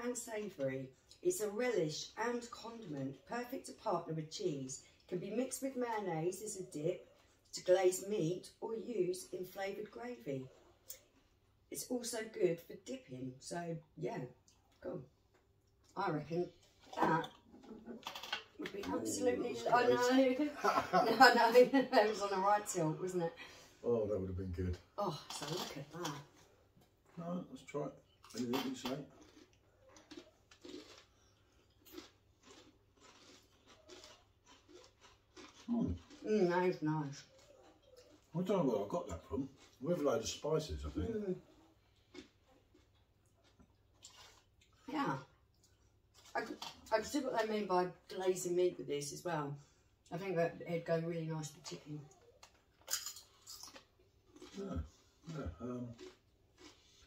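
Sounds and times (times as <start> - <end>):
crisps being crunched and chewed: 18.0 - 19.2, 28.2 - 38.4, 42.0 - 44.9, 52.4 - 57.0.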